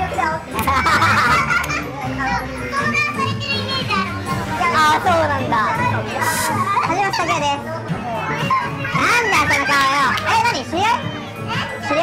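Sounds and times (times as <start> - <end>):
background music with bass: 0.0 - 12.0
crowd chatter: 0.0 - 12.0.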